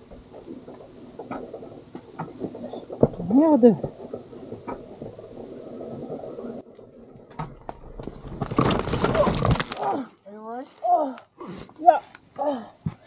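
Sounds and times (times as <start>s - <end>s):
motorcycle scraping on rocks: 0.0s - 9.8s.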